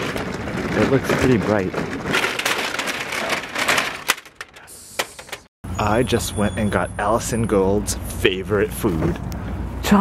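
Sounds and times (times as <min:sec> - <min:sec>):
shopping cart rattling on asphalt: 0:00.0 - 0:04.4.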